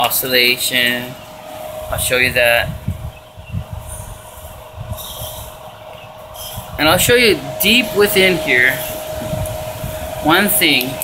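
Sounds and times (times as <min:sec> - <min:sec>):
cooler motor hum: 0:00.0 - 0:11.0
wind buffeting microphone: 0:00.0 - 0:11.0.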